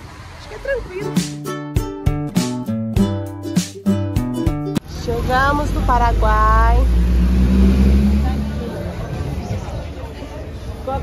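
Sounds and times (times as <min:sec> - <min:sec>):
vehicle engine rumbling: 0:04.7 - 0:11.0.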